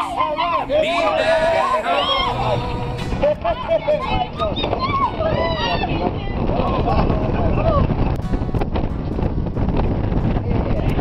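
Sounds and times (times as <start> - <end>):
background music: 0.0 - 5.9, 6.8 - 11.0
wind rumbling on microphone: 0.0 - 11.0.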